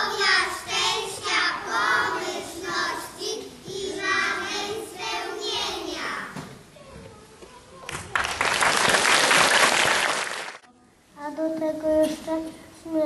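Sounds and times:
young children singing: 0.0 - 6.5.

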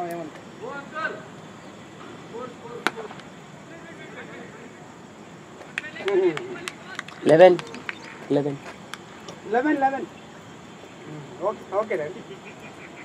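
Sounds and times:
cricket bat striking ball: 2.8 - 3.2.

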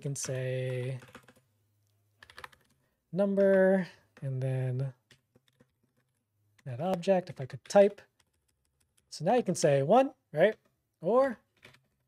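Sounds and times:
faint keyboard typing: 0.2 - 1.5, 2.2 - 4.2, 4.9 - 9.2.

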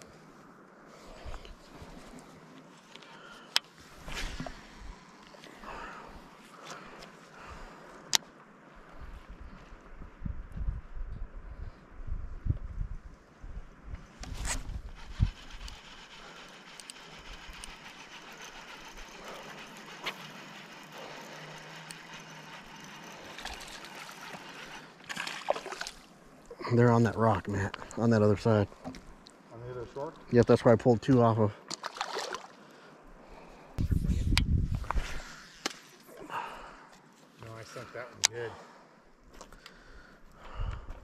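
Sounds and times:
fishing line hissing off spool: 14.1 - 26.1
lure landing in river: 25.0 - 26.1, 31.7 - 32.6.

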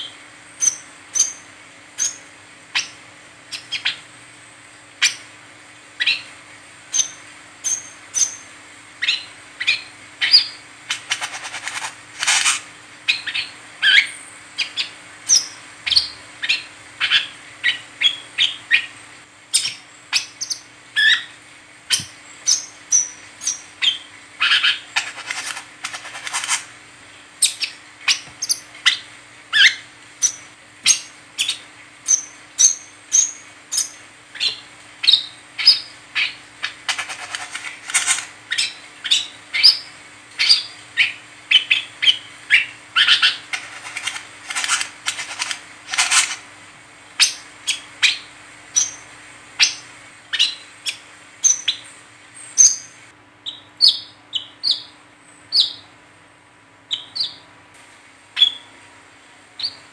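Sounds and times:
bird chattering: 0.0 - 2.2, 2.8 - 4.0, 6.9 - 26.6, 27.4 - 46.4.

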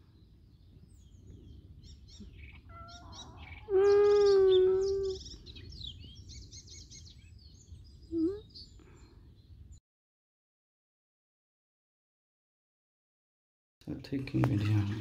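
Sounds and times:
small birds chirping: 0.0 - 9.8
cat meowing: 2.6 - 5.1.

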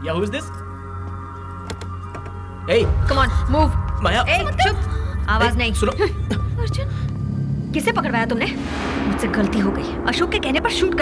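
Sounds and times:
sustained film score: 0.0 - 11.0
low rumble: 2.8 - 11.0.

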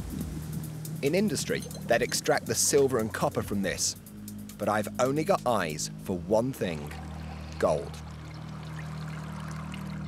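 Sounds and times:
liquid pouring through funnel: 6.6 - 10.0.

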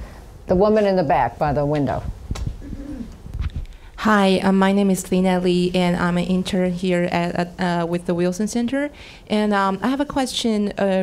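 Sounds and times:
faint voice murmuring: 2.6 - 3.2.

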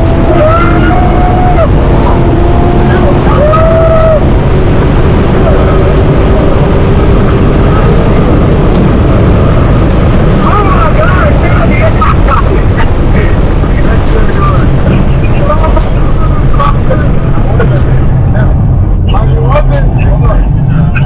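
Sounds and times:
car engine running: 0.0 - 21.0.

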